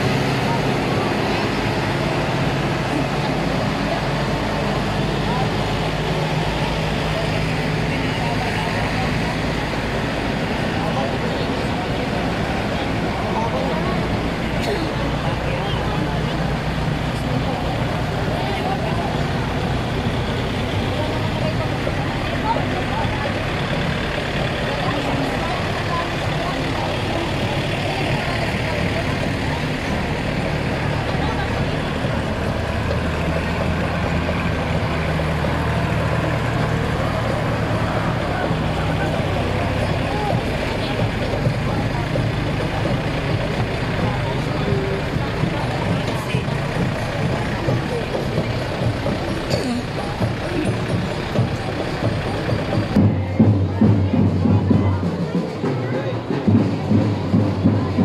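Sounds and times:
crowd voices: 0.0s - 58.0s
tractor engines running: 0.0s - 58.0s.

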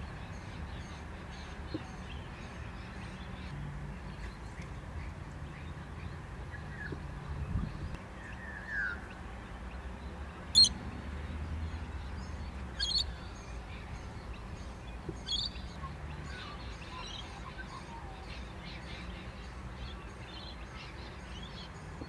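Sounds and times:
low wind rumble: 0.0s - 16.9s.

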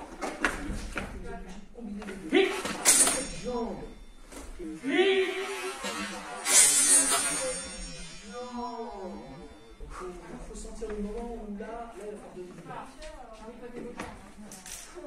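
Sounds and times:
sharp sword knocks: 2.7s - 3.5s, 6.4s - 8.2s.

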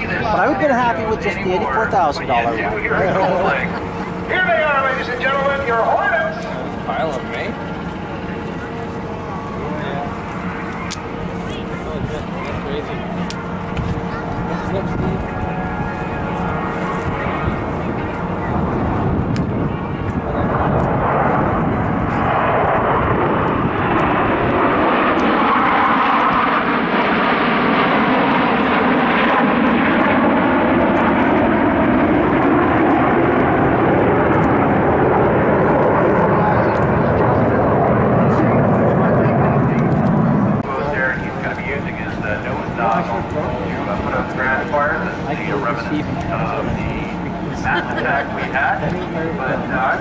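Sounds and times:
fighter jets flying over: 0.0s - 50.0s.

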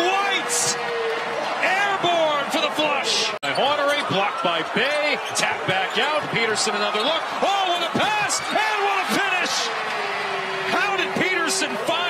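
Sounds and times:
male commentator talking: 0.0s - 0.9s, 1.5s - 9.8s, 10.6s - 12.0s.

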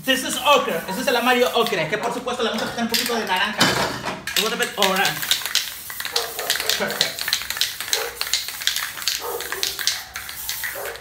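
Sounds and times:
spray can rattling: 0.0s - 11.0s.

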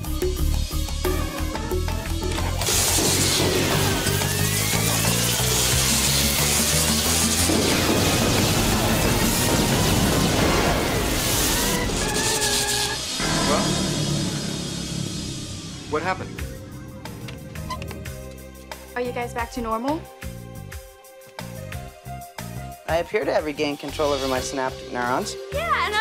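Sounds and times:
background music: 0.0s - 26.0s
loud electrical hiss: 2.4s - 16.4s
sweeping electronic tones: 11.0s - 18.4s.

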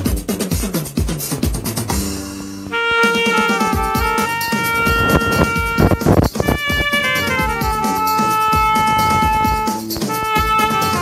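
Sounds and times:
backing track with steady beat: 0.0s - 11.0s
alto saxophone melody: 2.6s - 11.0s.

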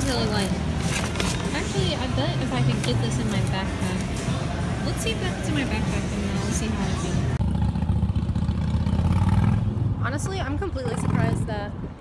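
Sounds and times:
vehicle passing with engine rumble: 7.1s - 12.0s.

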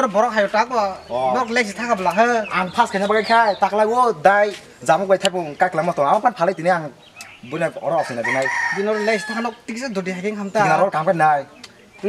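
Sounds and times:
man's voice: 0.0s - 12.0s
rooster crowing: 7.9s - 9.7s.

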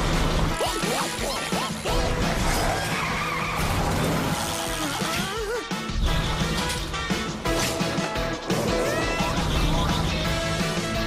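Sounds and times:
cartoon background music: 0.0s - 11.0s
comic sound effects: 0.5s - 5.8s.

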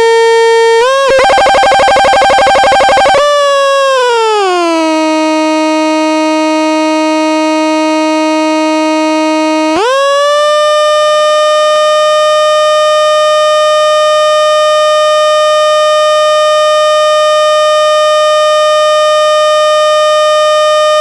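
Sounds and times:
electronic buzzing drone: 0.8s - 3.4s.

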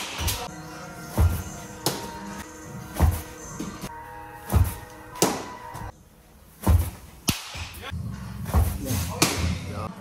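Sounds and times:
baseball impact cracks: 7.2s - 7.8s.

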